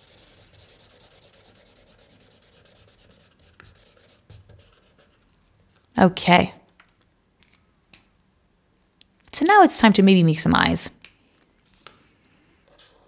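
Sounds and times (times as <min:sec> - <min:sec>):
marker scribbling on paper: 0:00.0 - 0:05.3.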